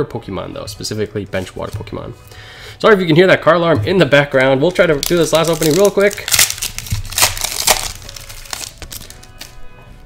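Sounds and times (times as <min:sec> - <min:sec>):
foil wrapper crackling: 0:04.6 - 0:09.6
cards being handled: 0:04.6 - 0:09.7.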